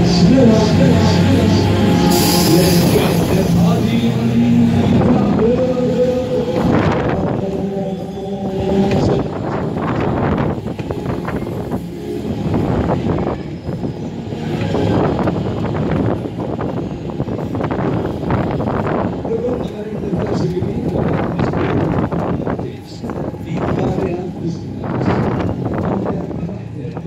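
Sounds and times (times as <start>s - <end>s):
fairground music: 0.0s - 9.8s
ride rumble: 0.0s - 27.0s
rushing buffeting air: 0.0s - 27.0s.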